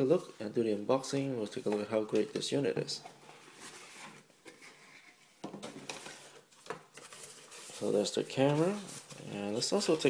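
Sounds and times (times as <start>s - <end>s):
cardboard and paper rustling: 3.1s - 10.0s.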